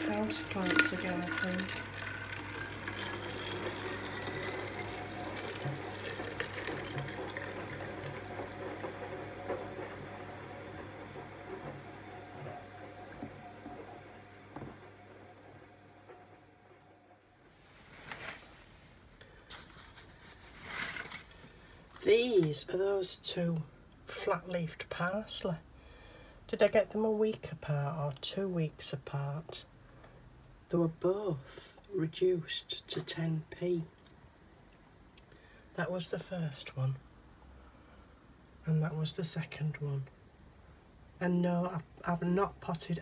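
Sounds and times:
water pouring into plastic bottle: 0.0 - 13.4.

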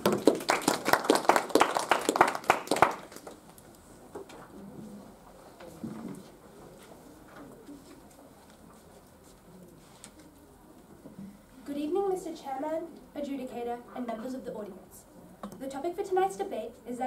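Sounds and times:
small group applauding: 0.0 - 3.6
faint shuffling: 3.3 - 12.7.

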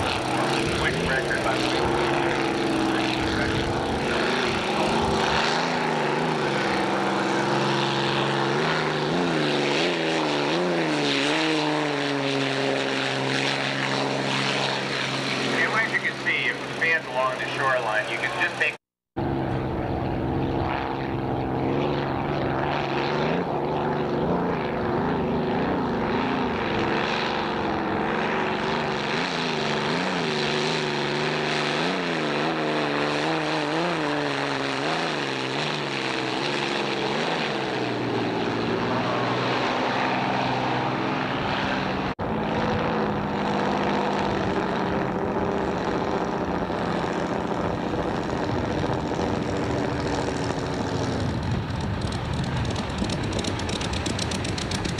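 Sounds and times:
racing boat engines droning: 0.0 - 54.9.

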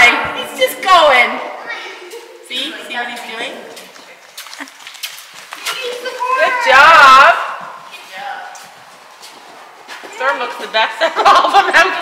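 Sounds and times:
hooves on sand: 2.2 - 11.6.

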